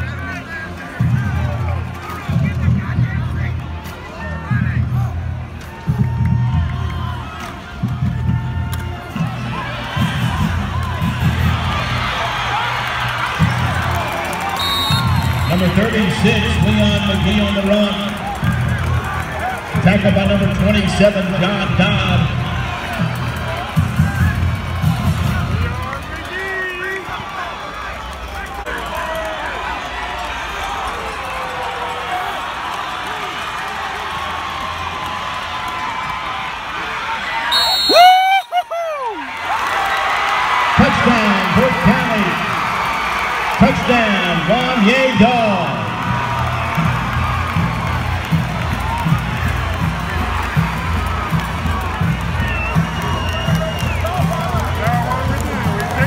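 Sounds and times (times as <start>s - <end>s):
music playing: 0.0s - 27.3s, 40.5s - 56.0s
crowd talking and cheering: 0.0s - 56.0s.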